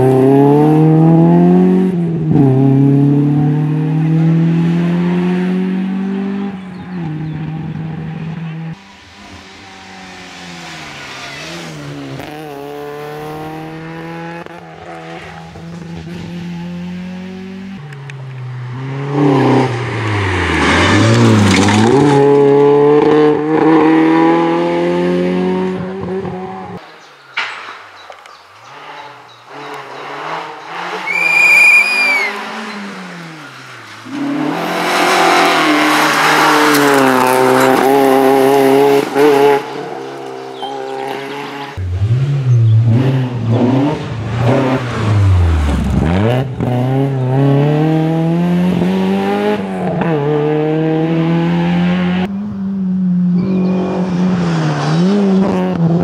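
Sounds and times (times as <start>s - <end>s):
rally car engine revving: 0.0s - 26.8s, 28.6s - 56.0s
high-pitched tyre squeal: 8.8s - 12.3s, 18.6s - 21.6s, 28.6s - 37.5s, 39.0s - 41.8s.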